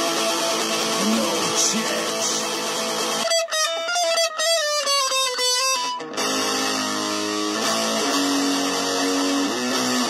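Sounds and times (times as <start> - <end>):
electric guitar long held notes: 0.0 - 10.0.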